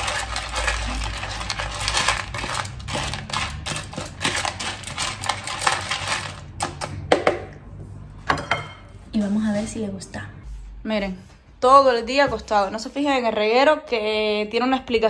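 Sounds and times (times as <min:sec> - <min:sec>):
knife stirring kibble in plastic tub: 0:00.0 - 0:07.0.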